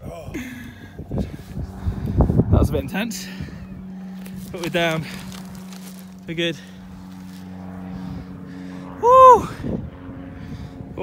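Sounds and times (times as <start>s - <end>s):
steady low hum: 0.0s - 11.0s
man whooping cheer: 9.0s - 9.6s.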